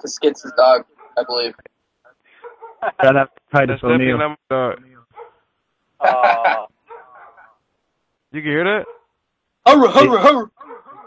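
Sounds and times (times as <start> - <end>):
dog barking: 1.0 - 1.4, 2.4 - 2.9, 5.1 - 5.4, 6.8 - 7.6, 8.8 - 9.2, 10.6 - 11.0.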